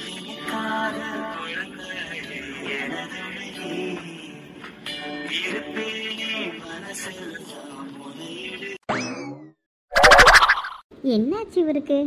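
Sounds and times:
rising pitch sweep: 0:10.0 - 0:10.8.

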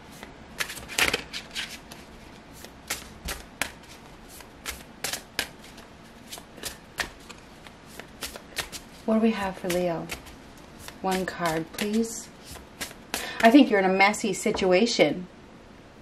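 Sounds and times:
cards being shuffled: 0:00.1 - 0:13.6.

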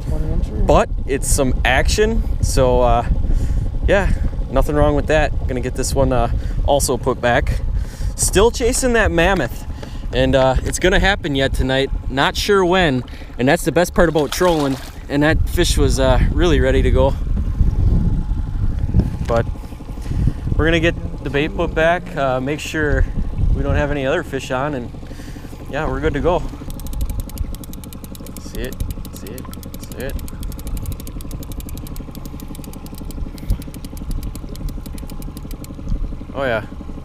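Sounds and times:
wind buffeting microphone: 0:00.0 - 0:13.1, 0:13.9 - 0:27.8
outboard motor running: 0:00.0 - 0:37.0
person speaking: 0:28.3 - 0:35.1.

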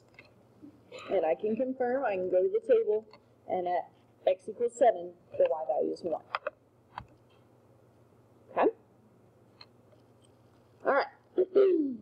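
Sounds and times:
low quiet hum: 0:00.0 - 0:12.0
woman speaking: 0:01.0 - 0:06.3.

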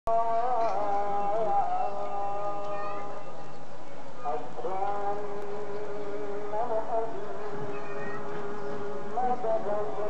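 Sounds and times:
person chanting a long note: 0:00.1 - 0:03.4, 0:04.2 - 0:10.0.

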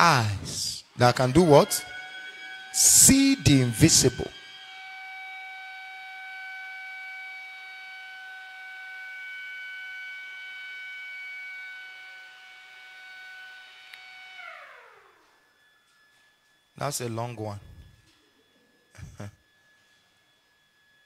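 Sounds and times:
siren winding down: 0:00.0 - 0:21.0.

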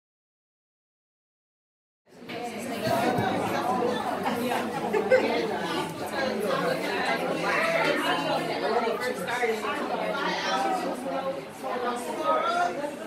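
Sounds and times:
crowd chatter in a large room: 0:02.1 - 0:13.0.

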